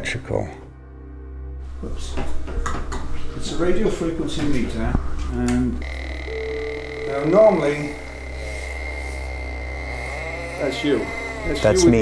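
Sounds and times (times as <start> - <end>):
radio-frequency meter buzz with whistle: 5.8 - 12.0.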